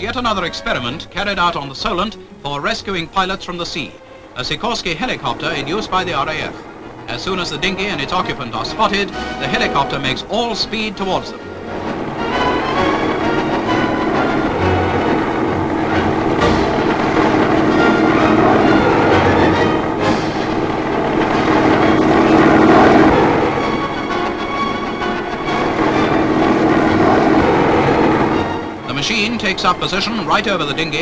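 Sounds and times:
music: 0:00.0 - 0:31.0
helicopter engine and rotor: 0:04.1 - 0:31.0.

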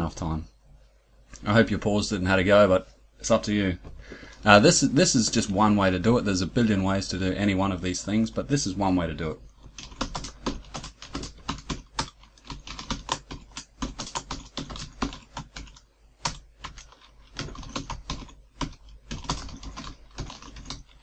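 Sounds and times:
typing on computer keyboard: 0:09.6 - 0:21.0.

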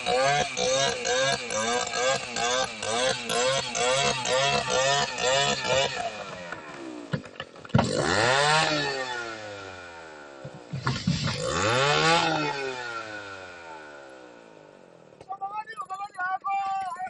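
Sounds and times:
chainsaw cutting tree trunk: 0:00.0 - 0:15.2.

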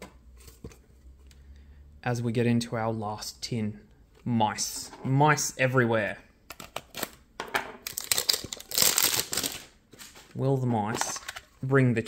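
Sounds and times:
foil wrapper crinkling: 0:07.9 - 0:10.2.

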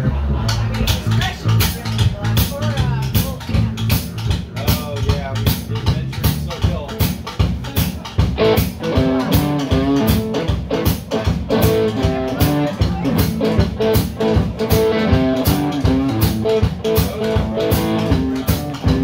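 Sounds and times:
drum kit beat: 0:00.0 - 0:19.0
electric bass: 0:00.0 - 0:19.0
electric guitar notes: 0:08.4 - 0:19.0.

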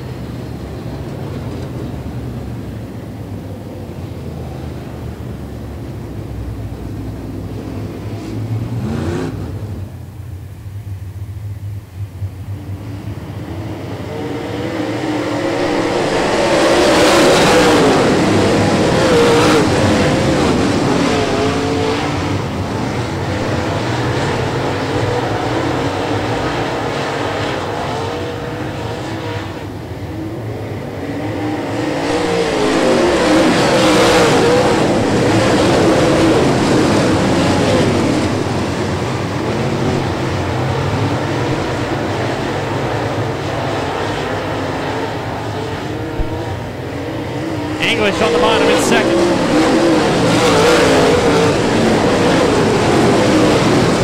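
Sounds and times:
race car engines passing: 0:00.0 - 0:10.2, 0:12.4 - 0:54.0.

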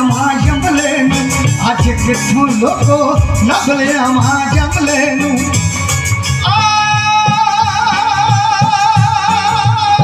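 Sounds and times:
dhol drum beats: 0:00.0 - 0:10.0
keyboard: 0:00.0 - 0:10.0.

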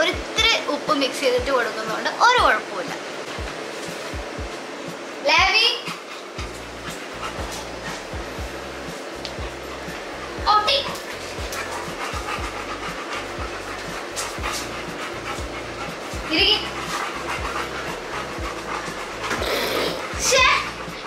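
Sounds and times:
background music with low beat: 0:03.2 - 0:05.5, 0:06.4 - 0:21.0
dogs panting: 0:05.4 - 0:21.0
high-pitched dog vocal sounds: 0:09.5 - 0:21.0.

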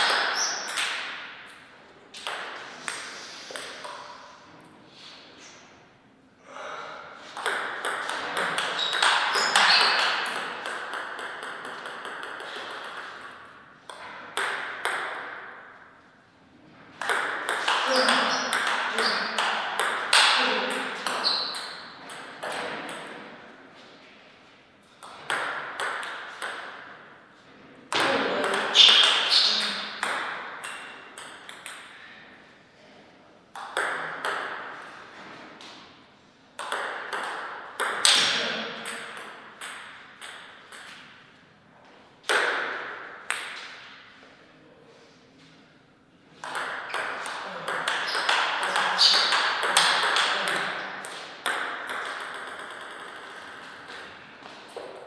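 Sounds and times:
table tennis ball clicks: 0:46.4 - 0:53.8.

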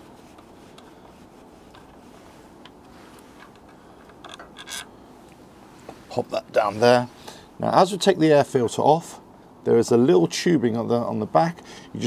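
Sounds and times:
faint metallic clicks and scraping: 0:00.3 - 0:06.1.

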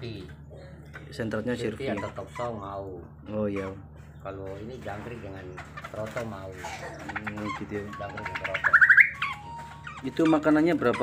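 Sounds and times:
bird rattling trill: 0:05.1 - 0:11.0.

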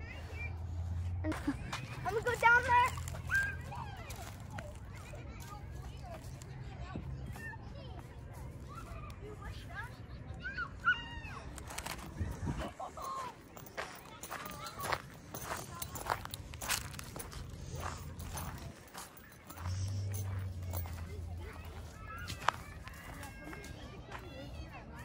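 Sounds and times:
faint distant voices: 0:00.0 - 0:25.0
footsteps crunching on dry leaves: 0:01.3 - 0:07.4, 0:11.5 - 0:24.8.

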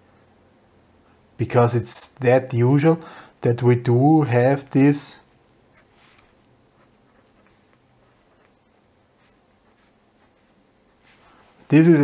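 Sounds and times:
pen scratching on paper: 0:05.7 - 0:11.2.

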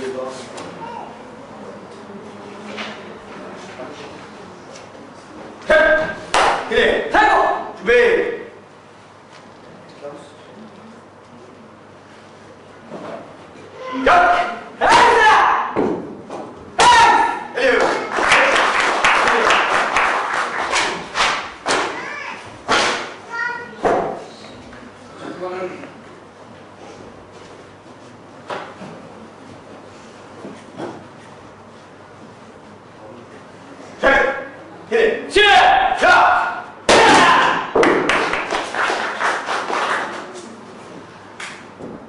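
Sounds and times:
person shouting: 0:00.8 - 0:01.2, 0:06.8 - 0:08.2, 0:13.8 - 0:15.8, 0:16.8 - 0:17.9, 0:35.4 - 0:37.7
clapping in a large hall: 0:06.2 - 0:06.7, 0:17.6 - 0:21.9, 0:37.6 - 0:40.7, 0:41.4 - 0:41.8
sharp strike on a board: 0:22.6 - 0:23.2, 0:36.9 - 0:38.1.

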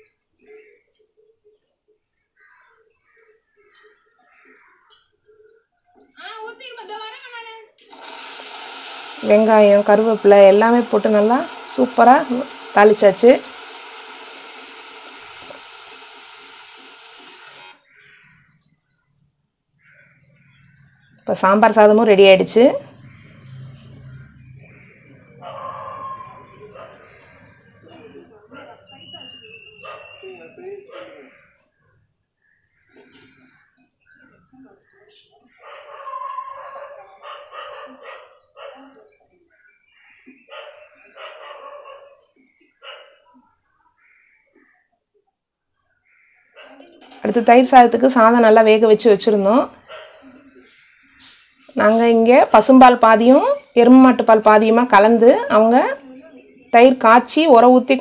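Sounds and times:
onions sizzling in hot oil: 0:08.1 - 0:16.7
dog barking: 0:25.4 - 0:27.1, 0:28.5 - 0:28.9, 0:29.8 - 0:30.3, 0:30.9 - 0:31.3, 0:35.6 - 0:39.0, 0:40.5 - 0:43.3, 0:46.6 - 0:46.9, 0:49.9 - 0:50.3.

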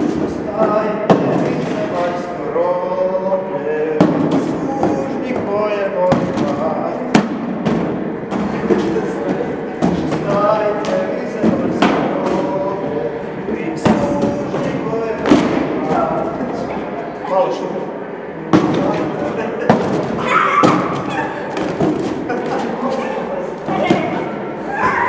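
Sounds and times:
mix of voices: 0:00.0 - 0:25.0.

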